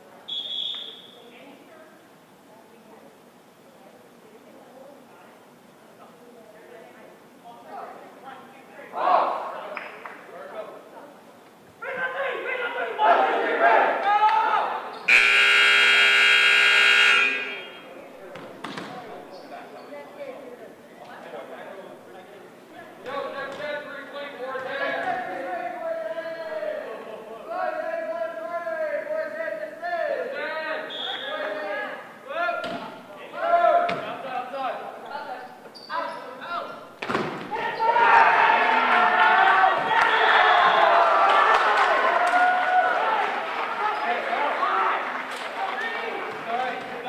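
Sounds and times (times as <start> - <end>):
players shouting: 11.8 - 17.9, 37.5 - 46.8
scoreboard horn blast: 15.1 - 17.9
volleyball smack: 37.0 - 37.5.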